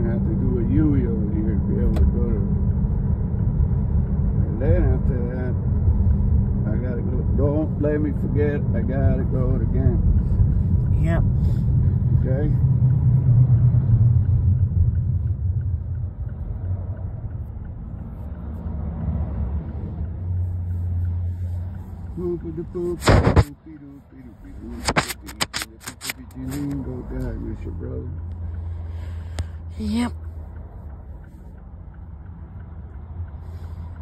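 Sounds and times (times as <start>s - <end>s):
car road and engine rumble: 0.0s - 34.0s.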